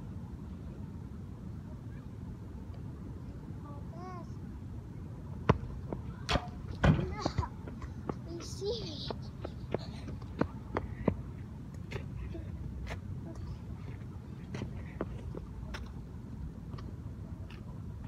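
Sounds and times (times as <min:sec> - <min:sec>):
soccer ball kicked and bouncing: 0:05.4 - 0:08.2.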